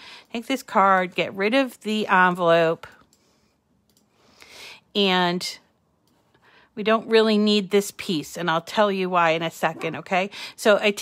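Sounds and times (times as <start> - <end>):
computer mouse clicks: 2.8 - 4.2.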